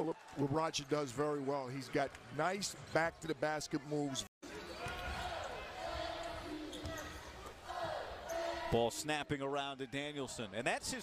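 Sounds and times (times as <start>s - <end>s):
murmur of arena crowd: 0.0s - 11.0s.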